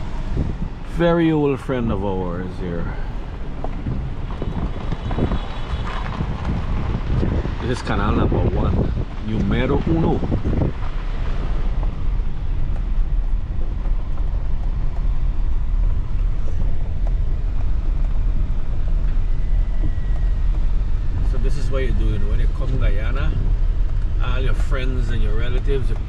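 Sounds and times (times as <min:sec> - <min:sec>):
car driving on gravel road: 0:00.0 - 0:26.0
wind noise: 0:00.0 - 0:26.0.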